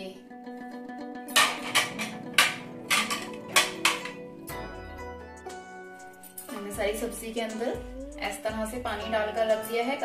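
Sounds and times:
plucked string music: 0:00.2 - 0:10.0
plates clinking: 0:01.3 - 0:04.2.

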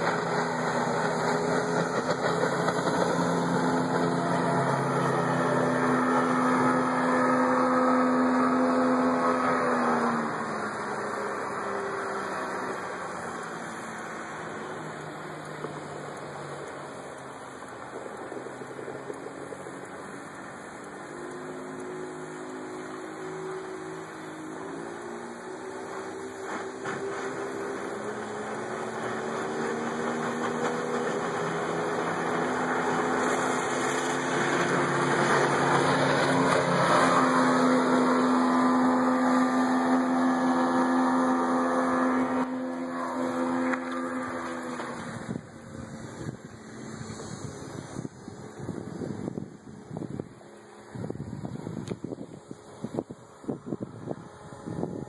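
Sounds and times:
outboard motor at speed: 0:00.0 - 0:55.0.

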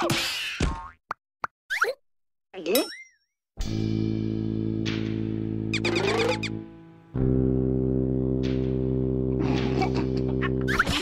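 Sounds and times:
squeaky gliding cry: 0:05.8 - 0:06.5.

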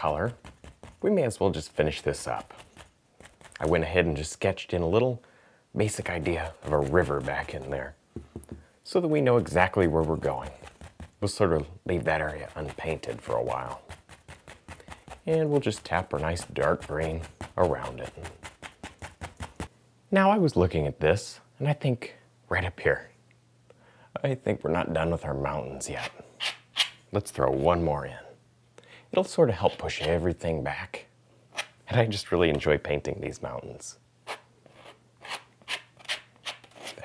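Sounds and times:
brush tapping on canvas: 0:00.0 - 0:01.1, 0:06.2 - 0:08.7, 0:09.4 - 0:19.7.

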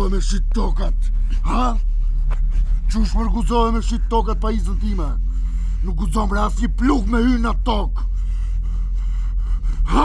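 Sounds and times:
steady low hum: 0:00.0 - 0:10.0
man breathing hard: 0:05.2 - 0:05.9, 0:08.0 - 0:10.0.

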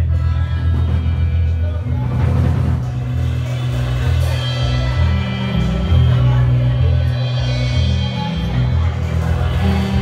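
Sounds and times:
live rock band playing loud: 0:00.0 - 0:10.0.

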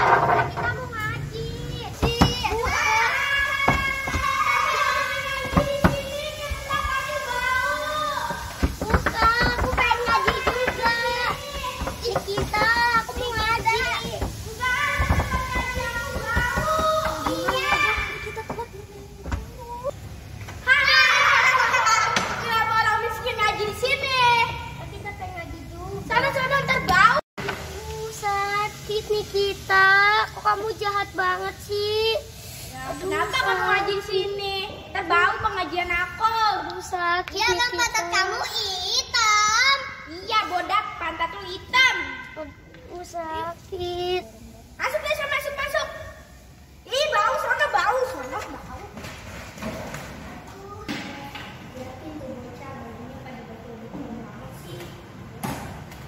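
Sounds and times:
children calling out: 0:00.0 - 0:25.1, 0:26.0 - 0:48.7.

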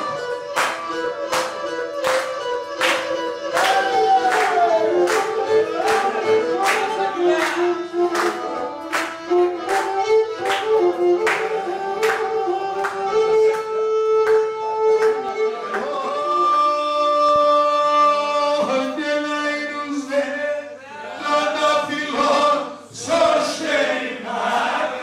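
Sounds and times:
hand claps: 0:00.0 - 0:16.6
man's voice: 0:15.6 - 0:22.8.

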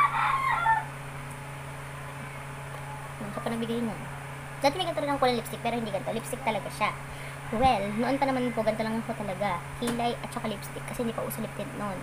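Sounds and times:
rooster crowing: 0:00.0 - 0:01.0, 0:07.5 - 0:09.0.

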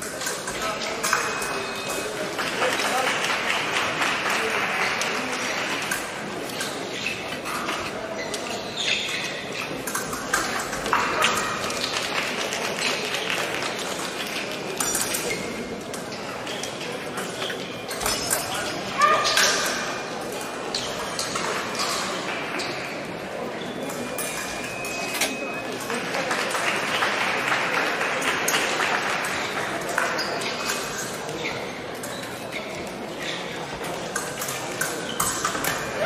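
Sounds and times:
fencing blades clinking: 0:00.0 - 0:36.0.

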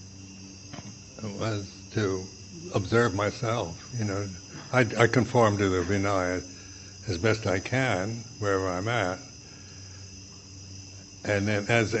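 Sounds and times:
crickets trilling: 0:00.0 - 0:12.0
low steady hum: 0:00.0 - 0:12.0.

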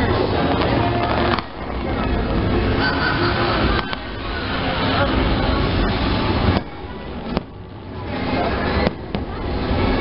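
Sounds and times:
continuous noisy din: 0:00.0 - 0:10.0.

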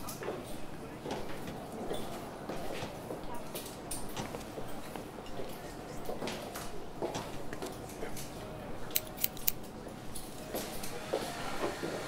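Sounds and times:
scissors snipping hair: 0:08.9 - 0:09.6.

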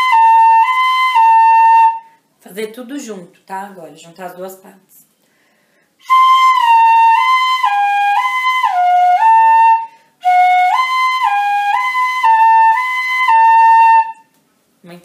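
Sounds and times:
player taking a breath: 0:05.2 - 0:06.0.

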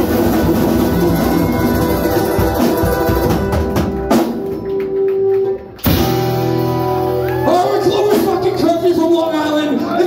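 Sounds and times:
guitar strumming: 0:00.0 - 0:09.2
drum kit: 0:00.0 - 0:09.8.

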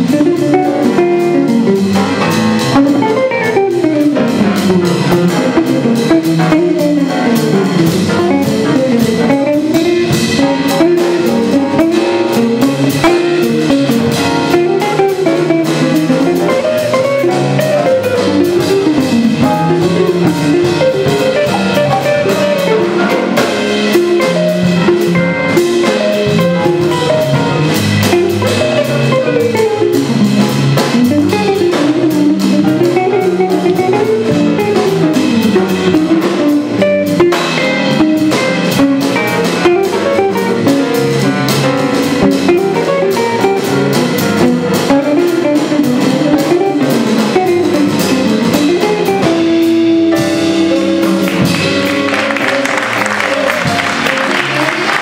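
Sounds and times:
jazz band playing: 0:00.0 - 0:55.0.

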